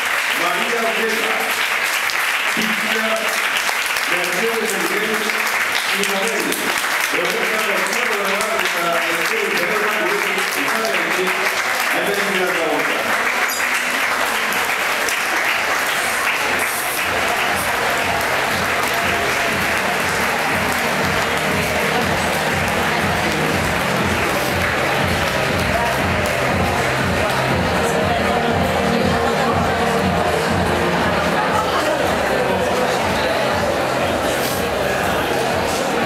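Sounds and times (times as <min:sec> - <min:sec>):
audience applauding: 0:00.0 - 0:36.0
voices: 0:06.0 - 0:36.0
music with bass beat: 0:17.1 - 0:36.0.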